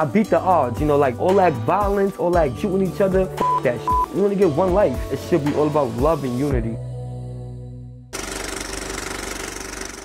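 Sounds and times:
loud rattling buzz: 8.1 - 10.0.

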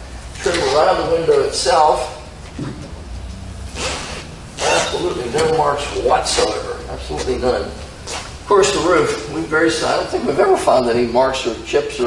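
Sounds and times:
low steady hum: 0.0 - 12.0
brief rubbing sound: 3.7 - 5.1.

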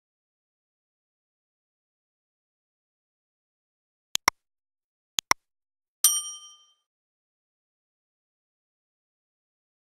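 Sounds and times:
bright bell chime: 6.1 - 6.8.

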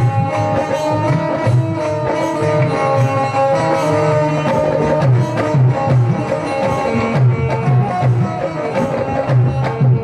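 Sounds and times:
hand drum beat: 0.0 - 10.0.

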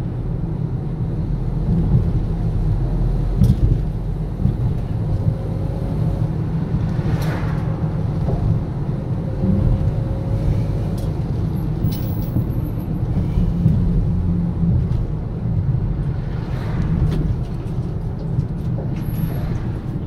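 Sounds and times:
car interior engine and tyre rumble: 0.0 - 20.0.

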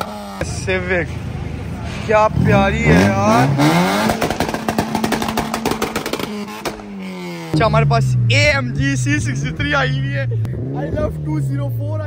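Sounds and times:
car engine revving: 0.0 - 12.0
exhaust crackles and pops: 3.7 - 8.0.

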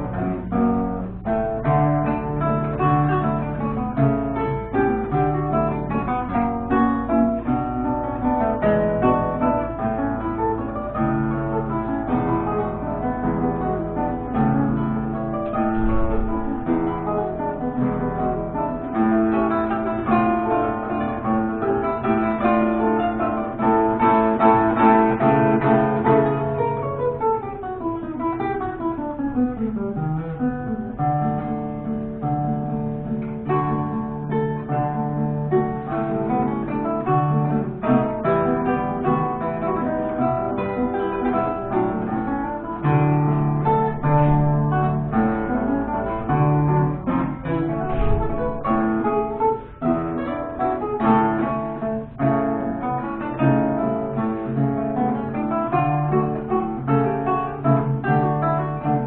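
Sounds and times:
classical guitar duet: 0.0 - 59.0.

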